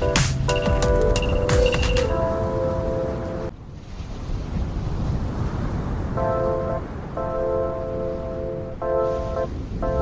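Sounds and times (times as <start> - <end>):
background music with sustained chords: 0.0 - 3.6.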